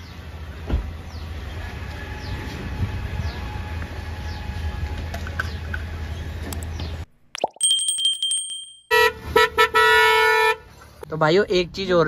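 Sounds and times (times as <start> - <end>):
thin high tone: 7.4 - 9.0
loud car horn: 8.9 - 10.7.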